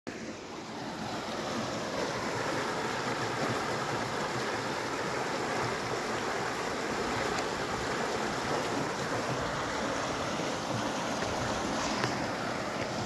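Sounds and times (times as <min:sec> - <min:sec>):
river water rushing over rocks: 0:00.1 - 0:13.0.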